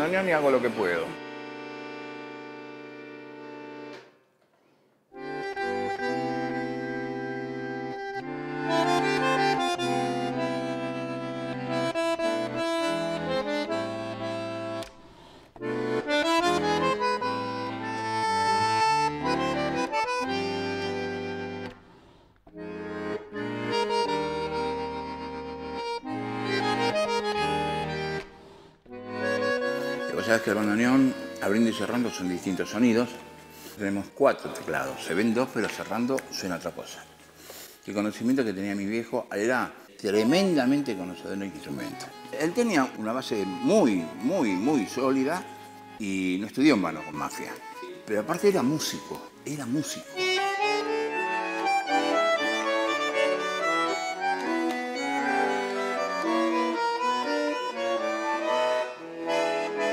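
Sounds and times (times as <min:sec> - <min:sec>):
bandoneon playing tango: 0:00.0 - 0:04.2, 0:05.1 - 0:59.9.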